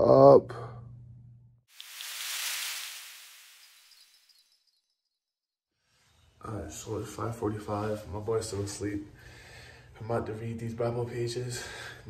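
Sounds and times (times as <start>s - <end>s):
whooshing rushing hiss: 1.7s - 4.2s.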